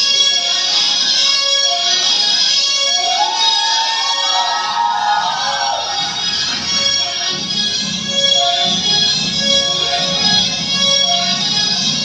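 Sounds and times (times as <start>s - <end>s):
music with held melody: 0.0s - 12.0s.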